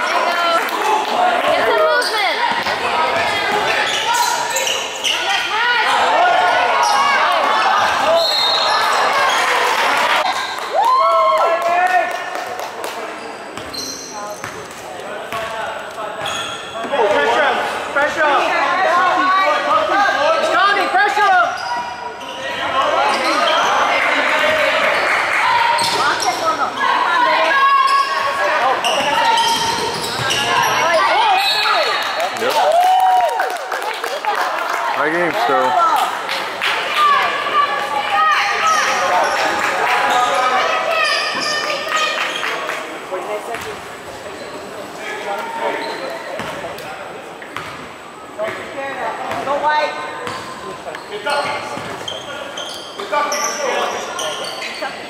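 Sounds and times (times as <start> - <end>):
people shouting in a hall: 0.0 - 12.2.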